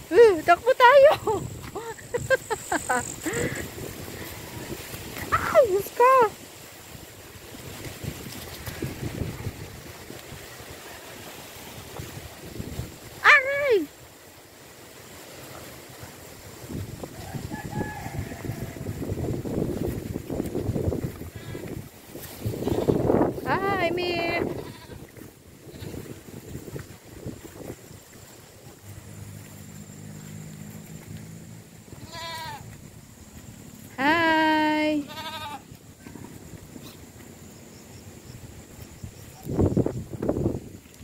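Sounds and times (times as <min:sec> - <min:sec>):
wind buffeting microphone: 0:00.0 - 0:10.8, 0:11.6 - 0:13.6, 0:16.4 - 0:29.6, 0:35.1 - 0:41.0
rooster crowing faintly: 0:17.1 - 0:19.2
goat bleating: 0:24.2 - 0:25.1, 0:32.0 - 0:32.7, 0:34.9 - 0:36.4.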